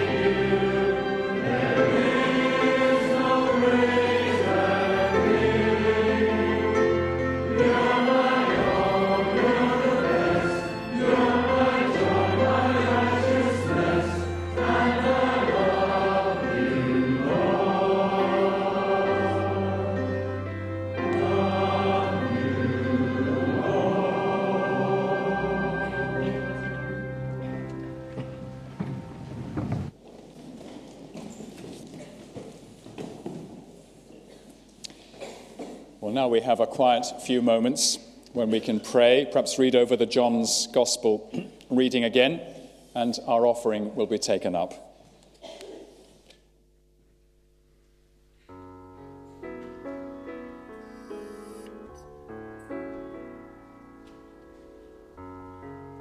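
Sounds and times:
congregation singing a hymn: 0:00.0 - 0:29.0
piano accompaniment: 0:00.0 - 0:30.0, 0:48.5 - 0:56.0.

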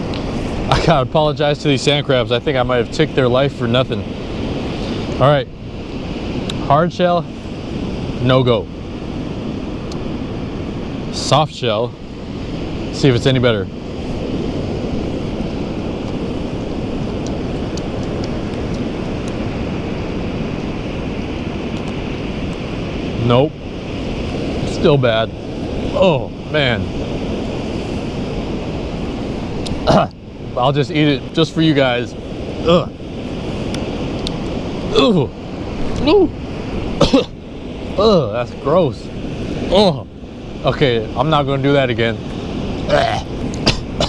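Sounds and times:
ocean surf on a beach: 0:00.0 - 0:44.0
wind: 0:00.0 - 0:44.0
wind buffeting microphone: 0:00.0 - 0:44.0.

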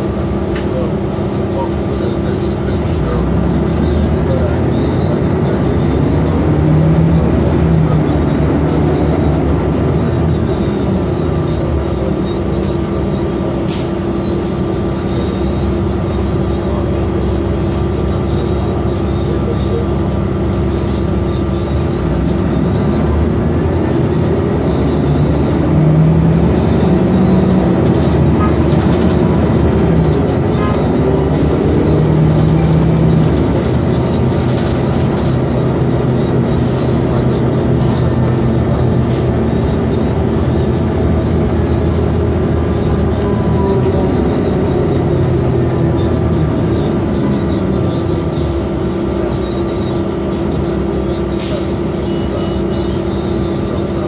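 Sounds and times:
bus diesel engine droning: 0:00.0 - 0:54.0.

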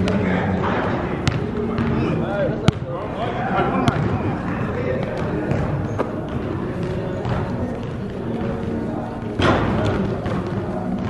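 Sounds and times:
basketball bouncing on gym floor: 0:01.2 - 0:02.9, 0:03.8 - 0:11.0.

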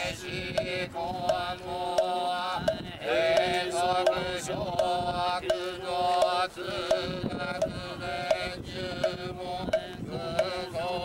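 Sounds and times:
priests chanting: 0:00.0 - 0:11.0.

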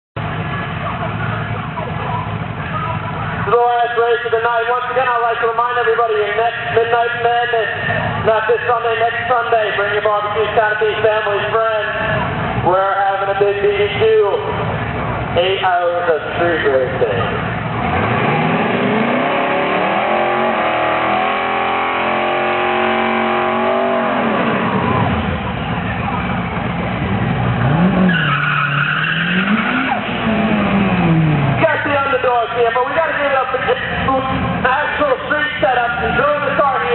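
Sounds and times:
car engine idling: 0:00.2 - 0:18.1, 0:23.3 - 0:28.1, 0:29.4 - 0:36.9
faint voices of people: 0:00.3 - 0:03.6, 0:24.9 - 0:27.1
car engine revving: 0:17.0 - 0:36.9
tyre squeal: 0:27.8 - 0:30.3.

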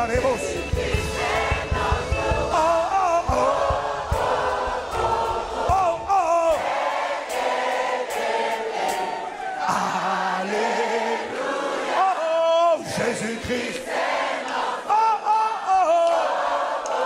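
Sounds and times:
band playing: 0:00.0 - 0:13.7
man and crowd singing: 0:00.0 - 0:17.0.

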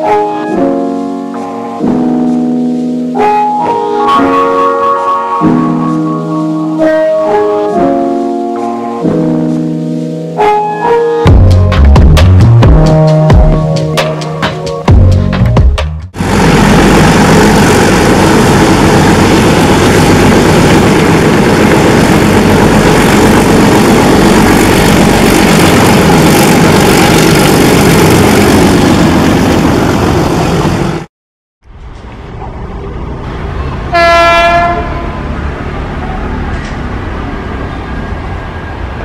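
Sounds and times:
music: 0:00.0 - 0:16.2
locomotive horn: 0:03.1 - 0:11.7, 0:33.9 - 0:35.4
train wheels rumbling on rails: 0:16.2 - 0:31.1, 0:31.7 - 0:39.0.

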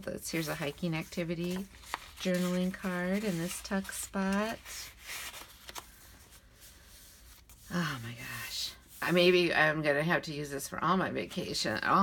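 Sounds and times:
paper pages rustling: 0:00.3 - 0:07.8.

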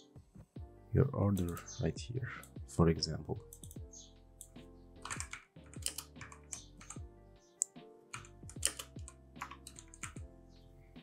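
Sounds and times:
soft background music: 0:00.0 - 0:11.0
computer keyboard typing: 0:03.5 - 0:10.3.

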